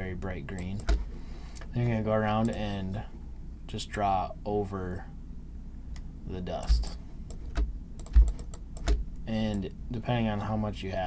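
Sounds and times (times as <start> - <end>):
keyboard and mouse clicking: 6.6 - 9.7.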